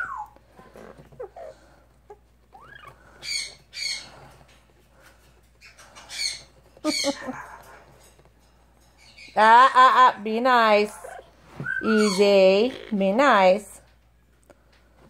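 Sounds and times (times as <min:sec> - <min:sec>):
parrot squawking softly: 0:00.0 - 0:04.1, 0:10.9 - 0:13.0.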